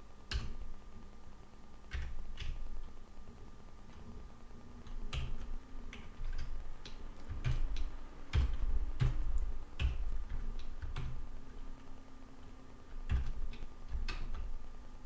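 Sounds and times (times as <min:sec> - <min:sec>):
computer keyboard typing: 0:00.3 - 0:00.7, 0:01.9 - 0:02.8, 0:04.8 - 0:11.7, 0:12.9 - 0:14.6.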